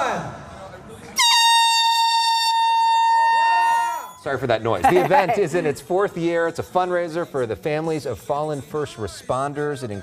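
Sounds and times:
compressed-air horn blast: 1.2 - 3.6.

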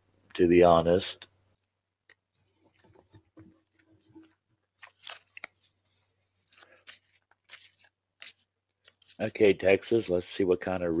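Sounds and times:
cards rustling and clicking: 3.8 - 9.5.

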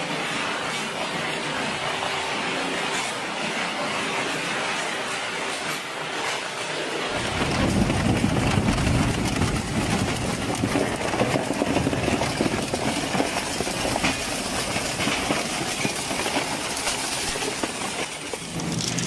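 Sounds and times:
shredder grinding: 7.1 - 19.0.

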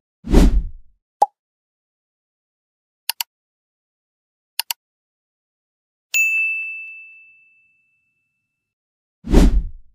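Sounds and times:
bright bell chime: 6.2 - 8.7.

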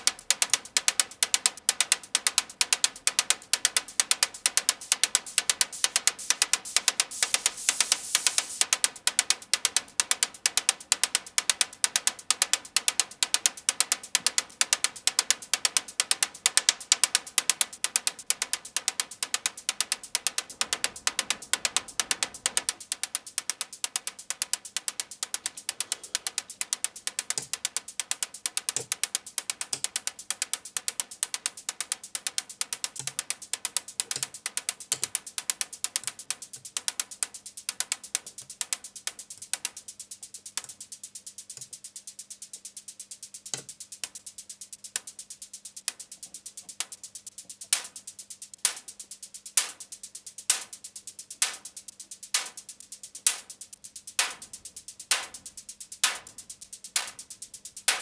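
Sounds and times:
synthesized hi-hat ticks: 0.0 - 58.0.

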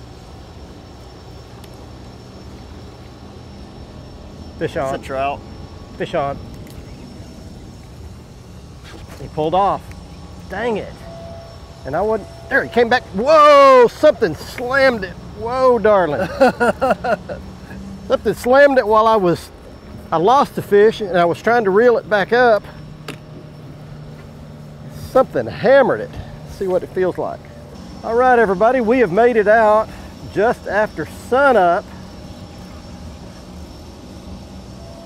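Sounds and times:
steady low machine hum: 0.0 - 35.0
wind: 0.0 - 35.0.

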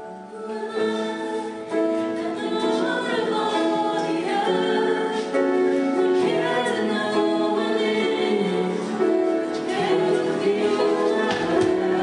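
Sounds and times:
group singing long held notes: 0.2 - 12.0.

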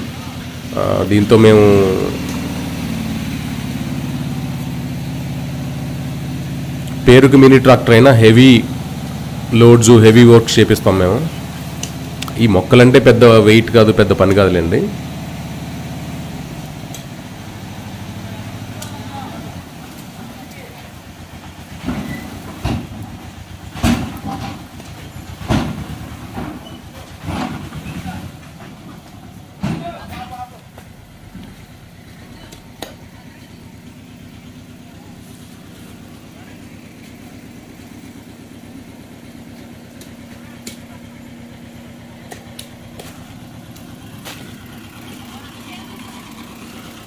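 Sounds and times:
tractor diesel engine idling: 0.0 - 47.0.

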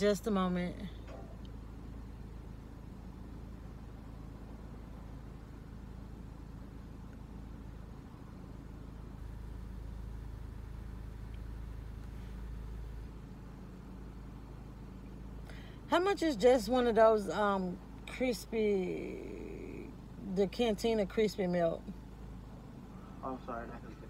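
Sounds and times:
car engine idling: 0.0 - 24.0.

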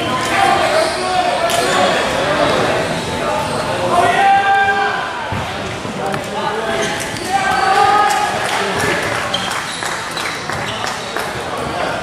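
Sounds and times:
echoing chatter of voices: 0.0 - 12.0.

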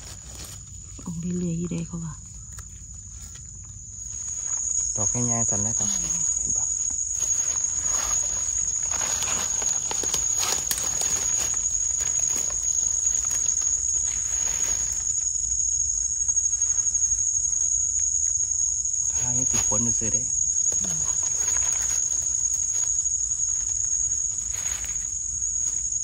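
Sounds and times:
dry leaves rustling: 0.0 - 1.6, 3.1 - 26.0
high-pitched insect drone: 0.0 - 26.0
soil scraping by hand: 7.1 - 15.1.

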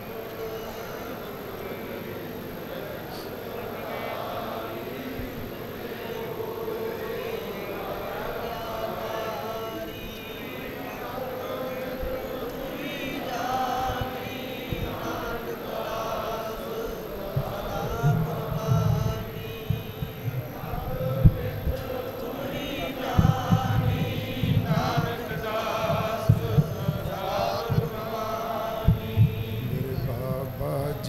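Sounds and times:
men chanting in unison: 0.0 - 31.0
low thumps: 17.3 - 31.0.

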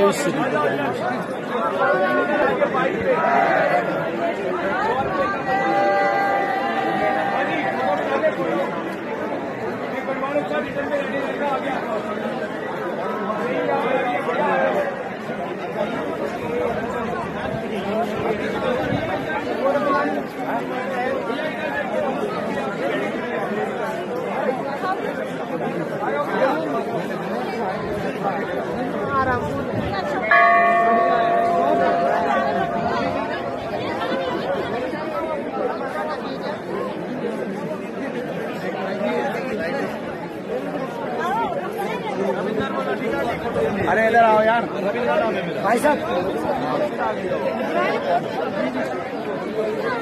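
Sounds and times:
dense crowd chatter: 0.0 - 50.0
temple bell ringing: 30.2 - 35.5.

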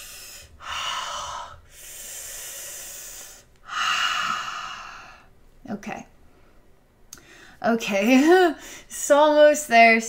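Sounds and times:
woman breathing forcefully: 0.0 - 5.4, 7.2 - 7.6, 8.6 - 8.9.

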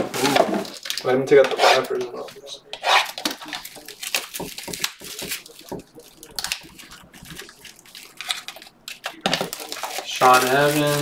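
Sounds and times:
cardboard boxes and plastic wrappers handled: 0.0 - 11.0.

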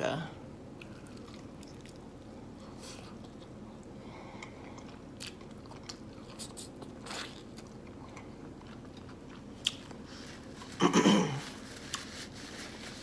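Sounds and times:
chewing crispy food: 0.7 - 10.8
throat clearing: 10.8 - 11.4.

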